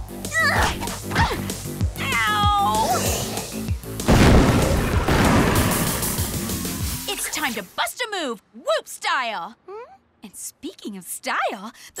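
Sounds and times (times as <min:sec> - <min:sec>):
cartoon music with steady beat: 0:00.0 - 0:04.4.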